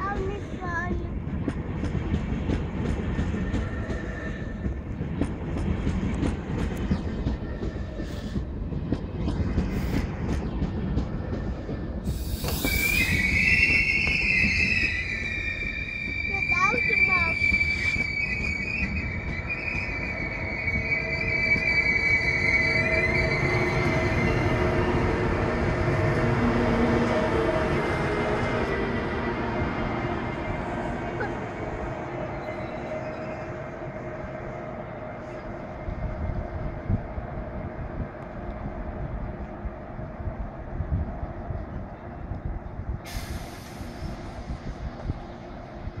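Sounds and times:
rumble of wheels on rail: 0.0s - 46.0s
train wheels squealing: 3.1s - 4.8s, 6.9s - 8.5s, 11.1s - 25.5s, 31.7s - 34.3s
short hiss: 12.1s - 13.0s.

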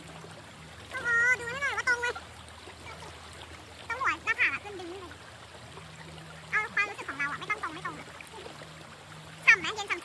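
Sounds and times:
river water rushing: 0.0s - 10.0s.

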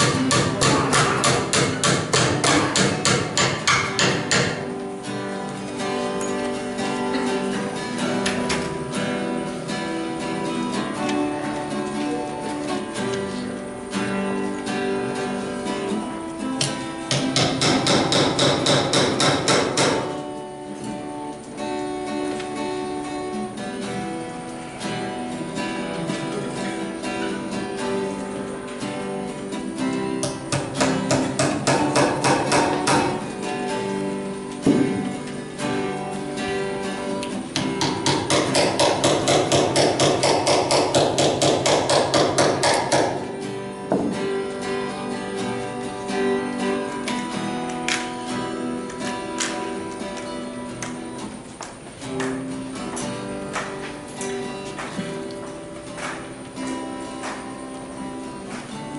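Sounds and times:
hammer striking nails into wood: 0.0s - 4.7s, 16.6s - 20.2s, 30.2s - 33.2s, 37.6s - 43.3s
acoustic guitar music: 0.0s - 58.9s.

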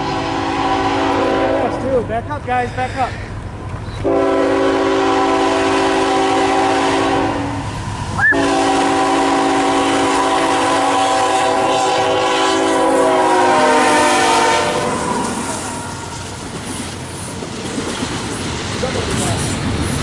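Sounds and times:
locomotive air horn blasts: 0.0s - 1.8s, 4.0s - 15.7s.

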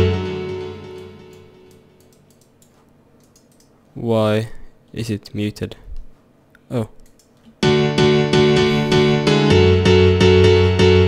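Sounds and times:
faint clicks: 1.3s - 3.8s, 6.0s - 7.6s
synthesizer house melody with bass: 7.6s - 11.0s.

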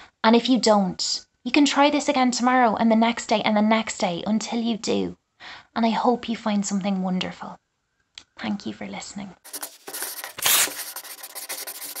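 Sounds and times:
scratchy rubbing noise: 9.5s - 12.0s.

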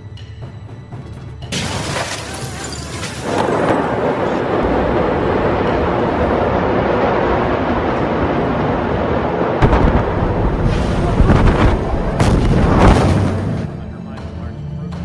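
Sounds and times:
explosion blasts: 3.1s - 13.8s
loud continuous rumble: 3.5s - 14.2s.

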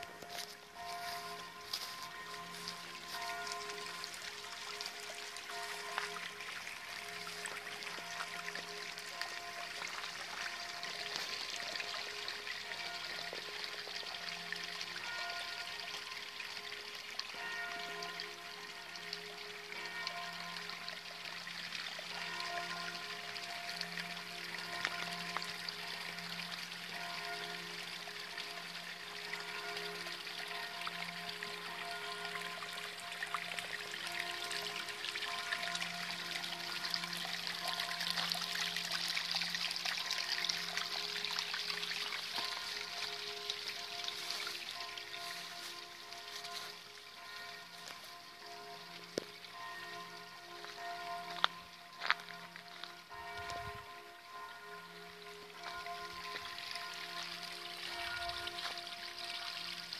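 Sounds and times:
slow music of long held notes: 0.0s - 59.9s
water trickling into a pond: 0.0s - 59.9s.

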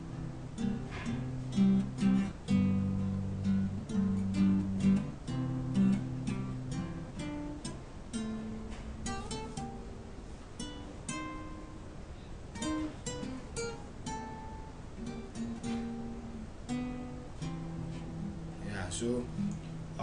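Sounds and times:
guitar plucking melody: 0.0s - 20.0s.

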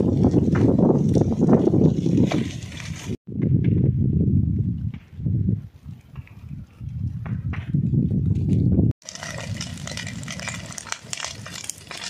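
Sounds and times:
wind buffeting microphone: 0.0s - 12.0s
dry leaves crackling in fire: 9.0s - 12.0s.

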